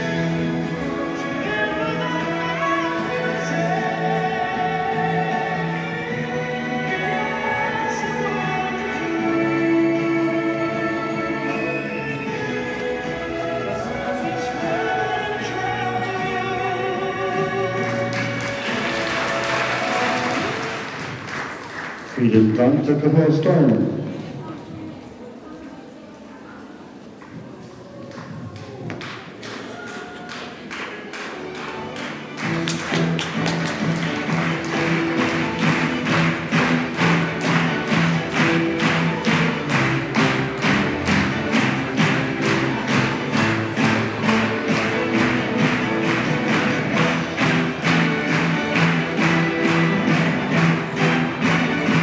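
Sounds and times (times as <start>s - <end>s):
music: 0.0s - 25.0s, 27.2s - 52.0s
audience applauding: 17.8s - 22.6s, 28.1s - 52.0s
music with steady beat: 31.1s - 52.0s.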